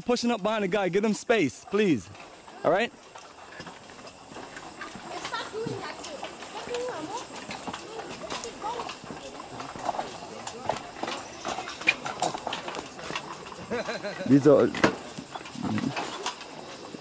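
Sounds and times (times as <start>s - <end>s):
footsteps on wooden planks: 1.6s - 16.9s
background voices: 3.5s - 16.8s.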